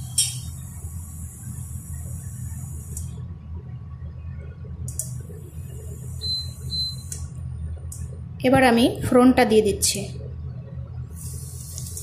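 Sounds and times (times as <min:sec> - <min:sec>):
low fan hum: 0:00.0 - 0:12.0.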